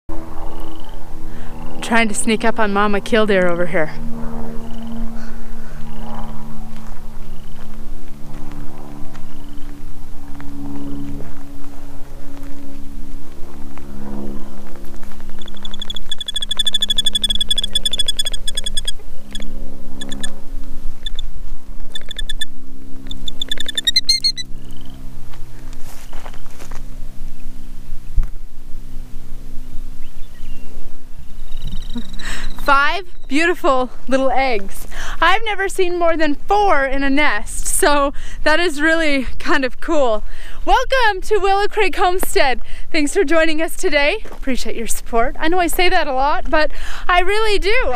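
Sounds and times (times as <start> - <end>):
bird shrill trilling call: 15.3 - 20.4, 21.9 - 25.0, 30.0 - 33.4
sharp high bird calls: 15.3 - 20.4, 21.9 - 25.0, 30.0 - 33.4.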